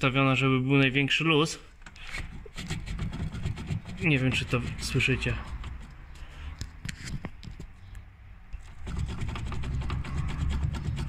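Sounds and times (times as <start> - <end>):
steering rack metallic knocking: 8.6 - 11.0.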